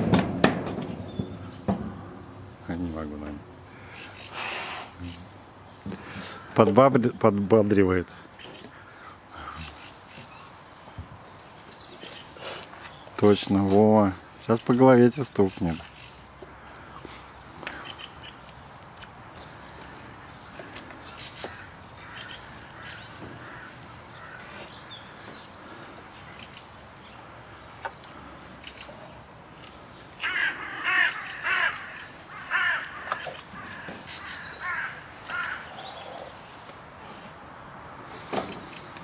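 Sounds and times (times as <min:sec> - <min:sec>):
crow cawing: 0:03.7 - 0:04.5, 0:08.4 - 0:10.0, 0:21.0 - 0:25.2, 0:30.2 - 0:36.3.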